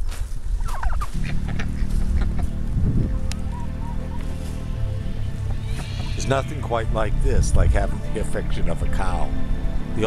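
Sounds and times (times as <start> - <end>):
turkey gobbling: 0.6 - 6.7.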